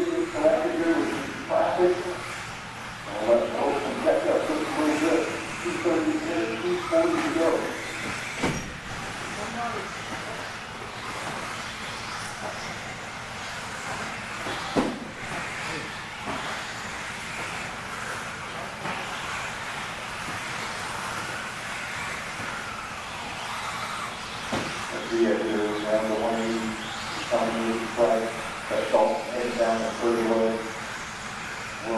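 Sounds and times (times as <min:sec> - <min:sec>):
electric rc cars whining: 0:00.0 - 0:31.9
sharp knocks: 0:14.7 - 0:15.1.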